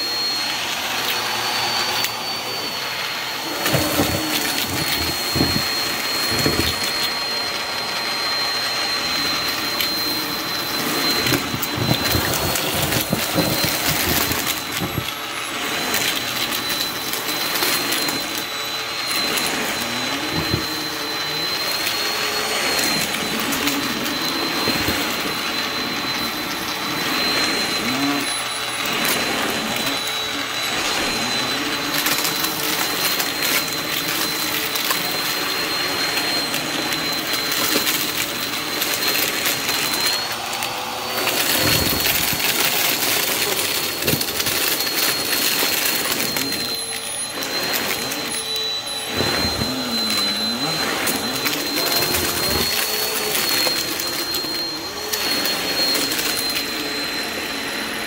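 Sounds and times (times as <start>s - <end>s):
debris clicking and rattling in vacuum: 0.0s - 58.0s
vacuum cleaner motor whine: 0.0s - 58.0s.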